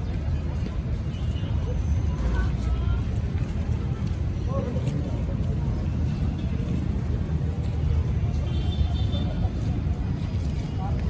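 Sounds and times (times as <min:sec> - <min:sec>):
faint voices: 0:00.0 - 0:11.0
low city rumble: 0:00.0 - 0:11.0.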